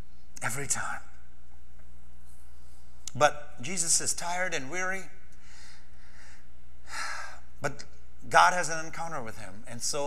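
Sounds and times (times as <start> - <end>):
man breathing into microphone: 5.4 - 7.4.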